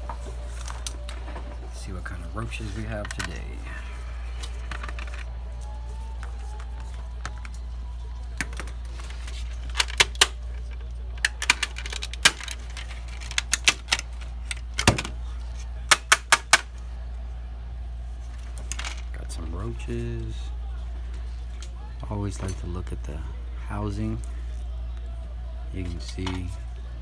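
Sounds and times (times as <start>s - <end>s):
plastic clips snapping: 11.2s - 15.1s, 15.9s - 16.7s.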